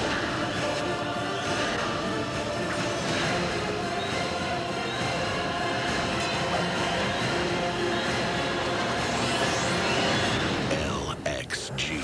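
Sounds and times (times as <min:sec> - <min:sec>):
dramatic orchestral score: 0:00.0 - 0:12.0.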